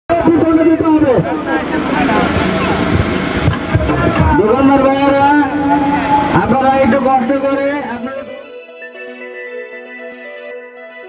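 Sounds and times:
person singing long notes: 0:03.8 - 0:08.6.

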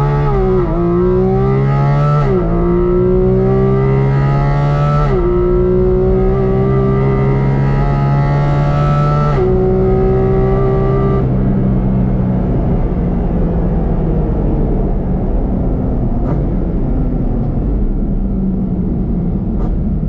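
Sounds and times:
car engine at full throttle: 0:00.0 - 0:20.0.

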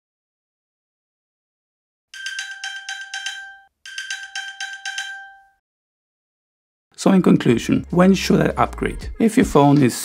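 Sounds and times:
phone chiming pings: 0:02.2 - 0:05.6.

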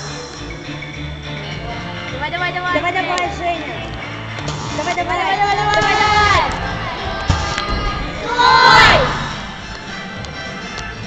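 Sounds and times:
spectators shouting encouragement: 0:05.3 - 0:09.6.

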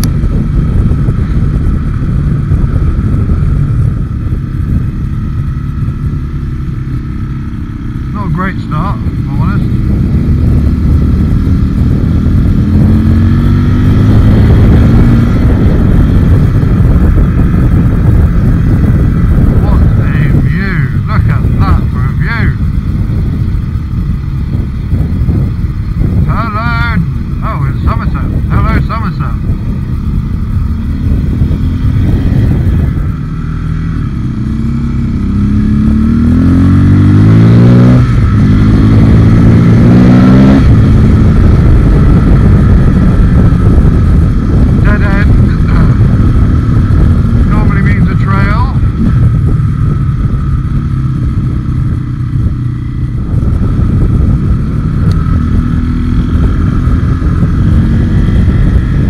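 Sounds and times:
motorcycle engine accelerating: 0:00.0 - 0:59.0
wind rush: 0:00.0 - 0:59.0.

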